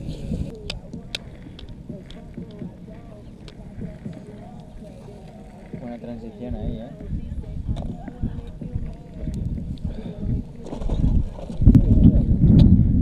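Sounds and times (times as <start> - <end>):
low background voices: 0.0 - 13.0.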